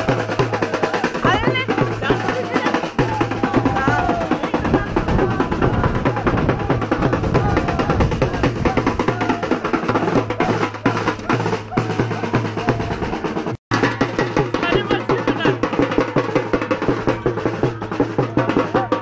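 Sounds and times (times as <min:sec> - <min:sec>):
fast loud drumming: 0:00.0 - 0:19.0.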